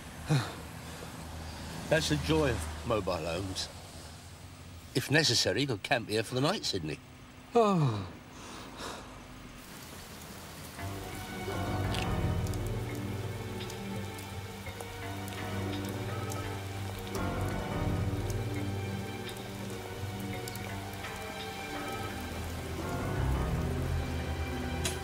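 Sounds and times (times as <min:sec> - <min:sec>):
rain falling with drips: 0:00.0 - 0:07.6, 0:08.8 - 0:25.0
background music of held notes: 0:10.8 - 0:25.0.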